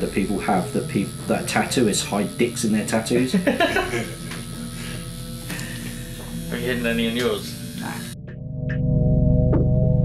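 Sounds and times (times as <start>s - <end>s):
tattoo machine buzzing: 0.0s - 8.2s.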